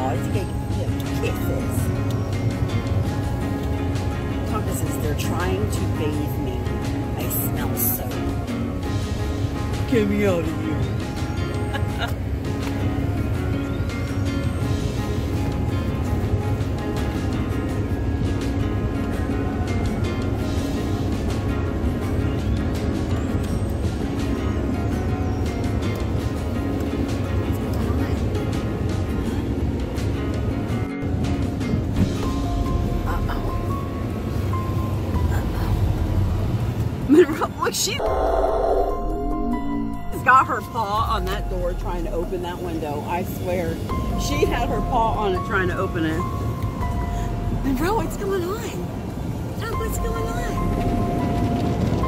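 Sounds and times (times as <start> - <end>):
sustained held notes: 38.0 - 42.7
steady low bass: 38.0 - 42.8.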